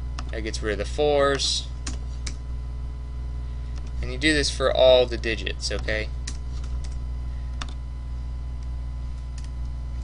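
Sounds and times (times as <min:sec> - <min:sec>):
steady low hum: 0:00.0 - 0:10.0
keyboard and mouse clicks: 0:07.6 - 0:07.8.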